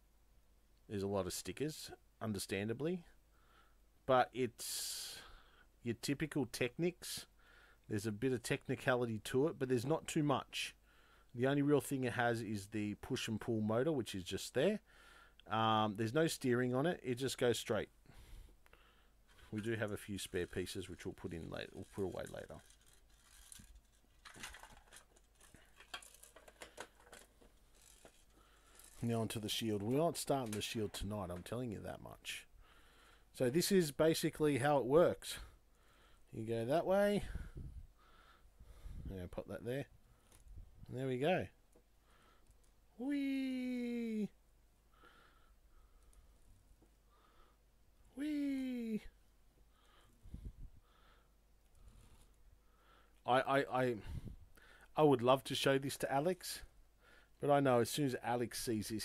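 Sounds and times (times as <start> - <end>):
plastic trays clicking and rattling: 24.2 - 28.0.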